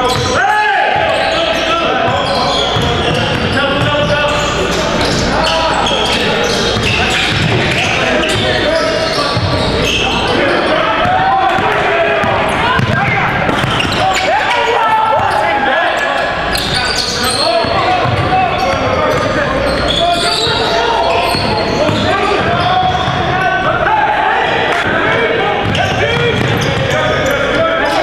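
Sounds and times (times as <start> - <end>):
people calling out: 0.0 - 28.0.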